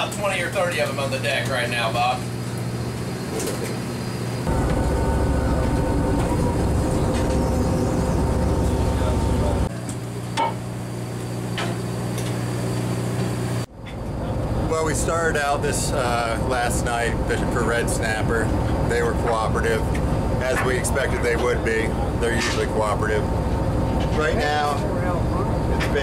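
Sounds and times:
boat engine hum: 0.0 - 26.0
rushing rumble: 4.4 - 9.7, 13.9 - 26.0.

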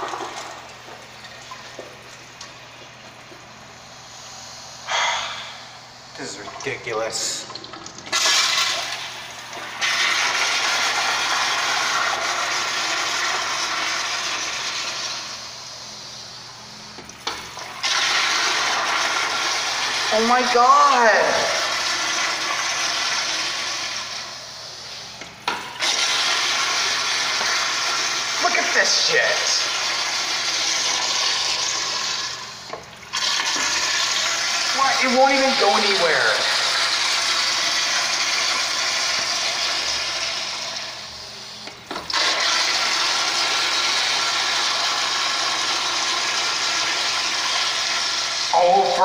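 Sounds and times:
toilet flushing: 0.0 - 49.0.

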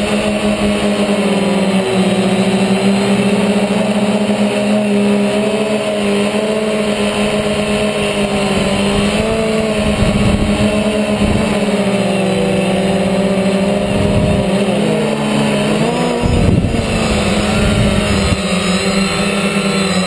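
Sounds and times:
drone propellers whirring: 0.0 - 20.0
wind rumble on microphone: 7.4 - 11.9, 13.6 - 14.8, 16.0 - 20.0.

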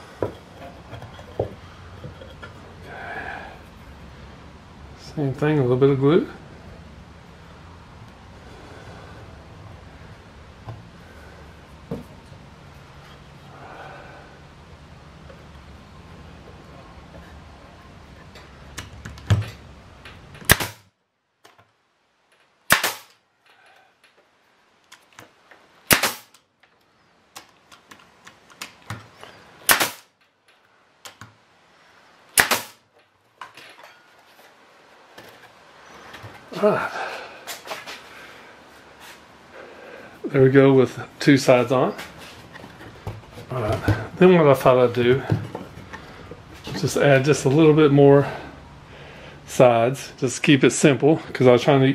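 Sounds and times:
nail gun firing into wood: 20.4 - 20.9, 22.7 - 23.2, 25.9 - 26.4, 29.6 - 30.1, 32.4 - 32.8.

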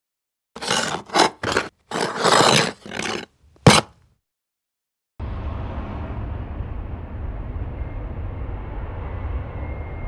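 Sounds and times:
harsh scraping: 0.6 - 4.0.

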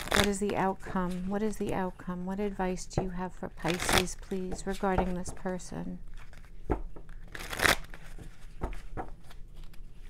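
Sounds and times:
cards rustling while shuffled: 3.6 - 10.0.

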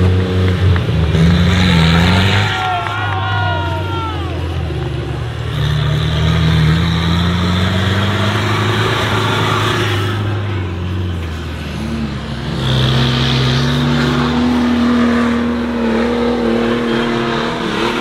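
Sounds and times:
pickup engine revving: 0.0 - 18.0.

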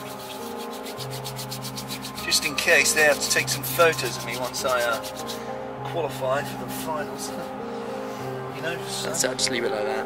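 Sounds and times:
hands rubbing hair: 0.0 - 5.4.

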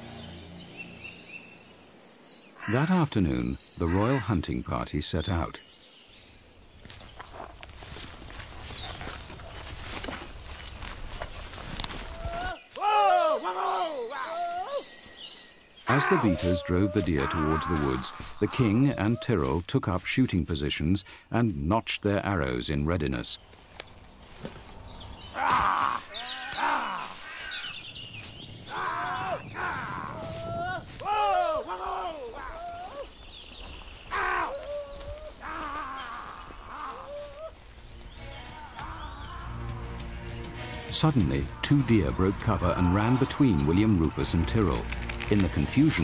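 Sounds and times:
longer pitched bird calls: 0.0 - 19.5, 23.4 - 46.0
small birds chirping: 0.0 - 46.0
rising bird call: 25.2 - 40.2.

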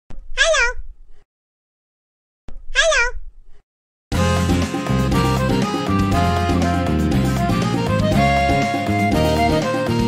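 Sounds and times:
cat meow: 0.4 - 0.8, 2.7 - 3.2.

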